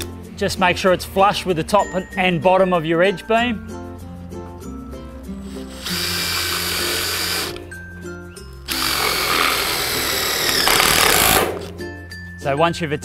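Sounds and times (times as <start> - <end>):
cordless drill driving screw: 5.4 - 7.7, 8.7 - 11.7.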